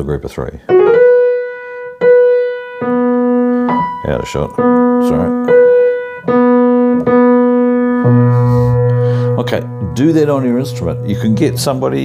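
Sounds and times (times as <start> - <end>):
piano single notes ringing: 0.7 - 12.0.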